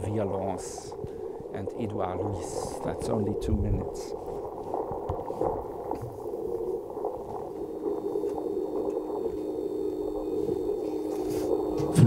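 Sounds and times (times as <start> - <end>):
steady low tone: 0.0 - 12.0
muffled low drone: 7.2 - 12.0.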